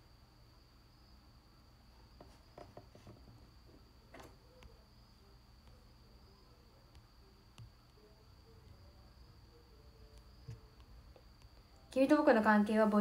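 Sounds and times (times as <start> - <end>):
faint high-pitched whine: 0.0 - 13.0.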